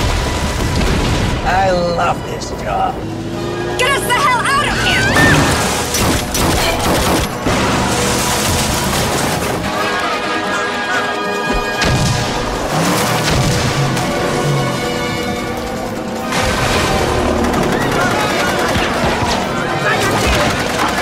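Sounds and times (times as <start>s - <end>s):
booms and crashes: 0.0s - 1.6s, 11.6s - 14.4s
dramatic music: 0.0s - 21.0s
gunfire bursts: 5.0s - 21.0s.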